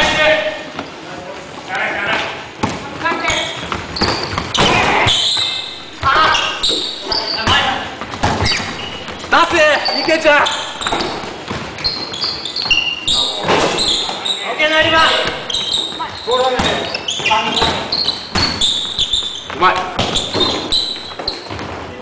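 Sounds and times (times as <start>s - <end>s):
basketball bouncing on wooden floor: 2.6s - 12.8s, 14.8s - 21.8s
players calling out: 3.1s - 21.5s.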